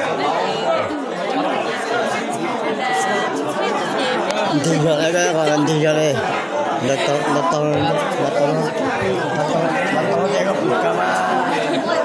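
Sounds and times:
people talking over one another: 0.0 - 12.0.

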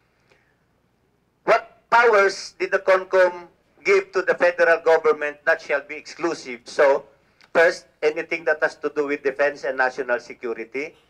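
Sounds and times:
man speaking into a microphone: 1.4 - 11.0.

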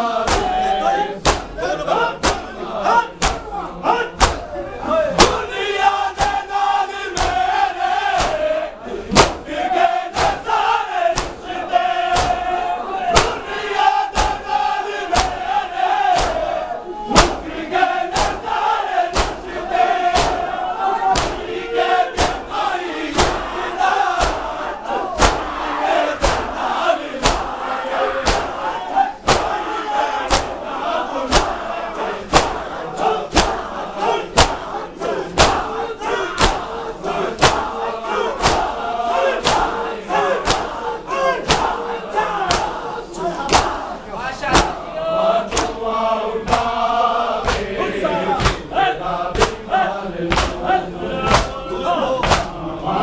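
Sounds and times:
men beating chests in unison: 0.0 - 53.0
men chanting together: 0.0 - 53.0.

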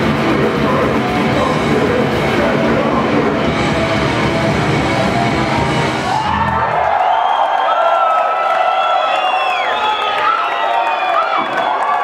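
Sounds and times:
grindcore band playing live: 0.0 - 6.6
crowd cheering: 0.0 - 12.0.

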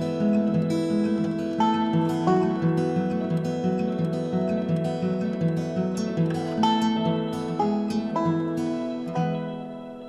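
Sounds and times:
acoustic guitar strumming chords: 0.0 - 10.0.

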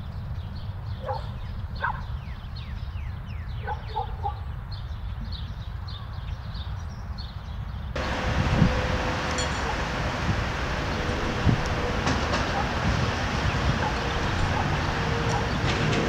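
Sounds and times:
traffic noise rumble: 0.0 - 16.0.

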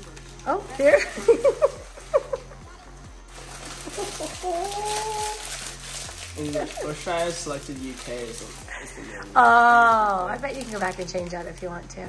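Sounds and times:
people talking: 0.5 - 1.4, 6.4 - 12.0.

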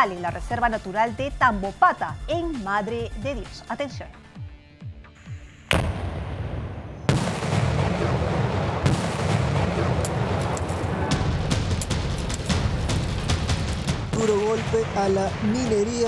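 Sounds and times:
explosion blasts: 5.7 - 16.0.

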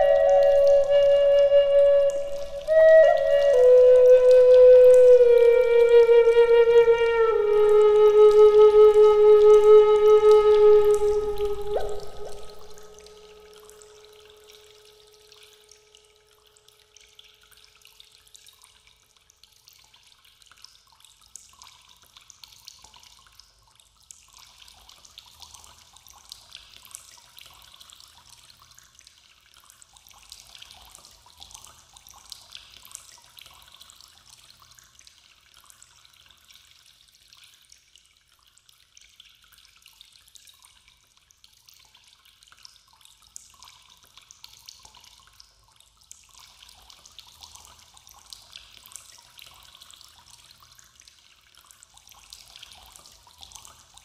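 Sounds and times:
held woodwind note: 0.0 - 13.3
water trickling and dripping: 0.0 - 54.0.

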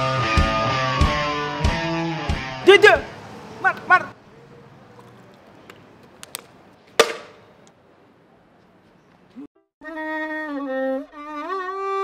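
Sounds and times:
sharp ringing clang: 7.0 - 7.5.

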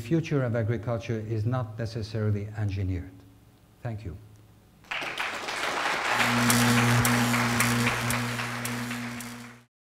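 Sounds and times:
audience applause: 4.8 - 9.7
steady low hum: 6.0 - 9.7.

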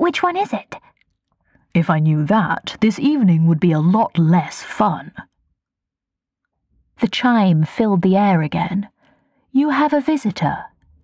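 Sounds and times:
narrator speaking: 0.0 - 0.8, 1.8 - 5.3, 7.0 - 8.9, 9.6 - 10.7.

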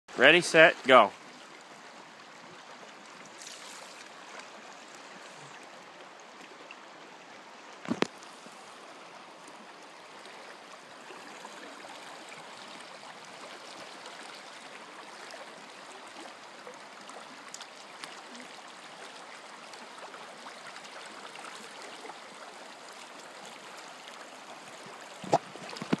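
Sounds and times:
river water flowing: 0.1 - 26.0.

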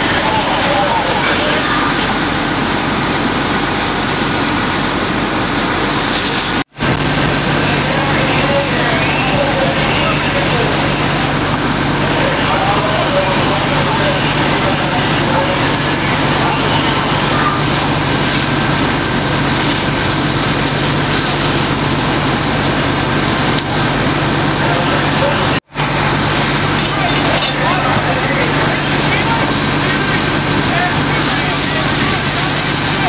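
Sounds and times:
indistinct voices: 0.0 - 3.5, 6.8 - 33.0
continuous rushing noise: 0.0 - 33.0
vehicle engine humming: 0.0 - 33.0.

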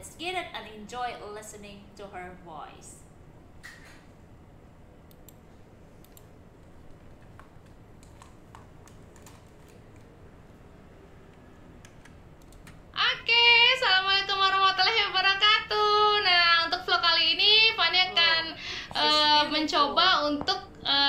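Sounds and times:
woman's voice from video: 0.0 - 3.1, 16.2 - 21.0
mouse and keyboard clicks: 7.3 - 10.1.

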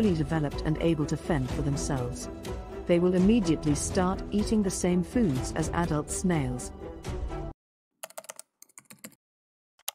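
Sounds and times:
background music: 0.0 - 7.6
computer keyboard typing: 8.0 - 9.2.

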